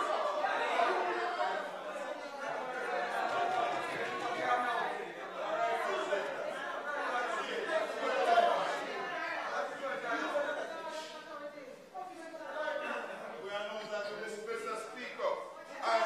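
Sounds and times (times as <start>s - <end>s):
indistinct chatter of voices: 0.0s - 16.0s.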